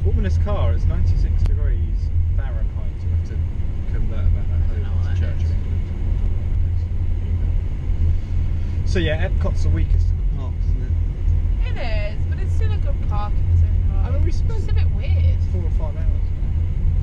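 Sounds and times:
car cabin rumble: 0:00.0 - 0:17.0.

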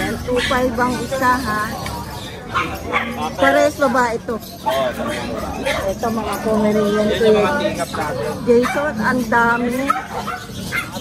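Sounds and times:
small dogs yipping: 0:00.0 - 0:11.0.

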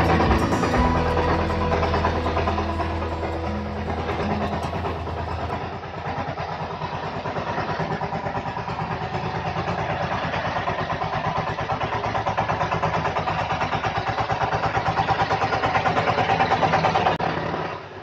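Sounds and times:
diesel engine chugging: 0:00.0 - 0:18.0.

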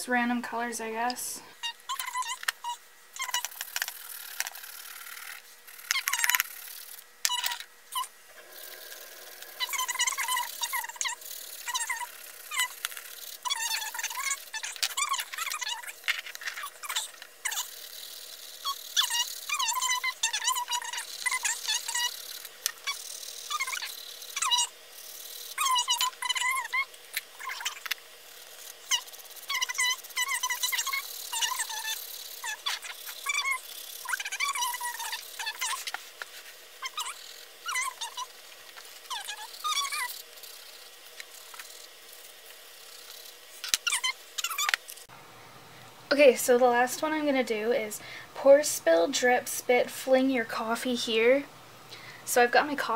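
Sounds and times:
colored pencil scratching paper: 0:08.5 - 0:44.8.

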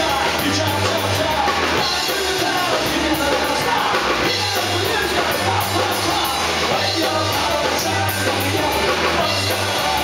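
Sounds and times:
drums: 0:00.0 - 0:10.0
guitar: 0:00.0 - 0:10.0
rock song through speakers: 0:00.0 - 0:10.0.

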